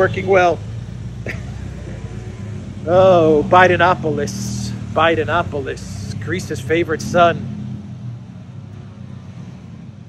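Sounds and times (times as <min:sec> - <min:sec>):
vehicle engines running: 0:00.0 - 0:10.0.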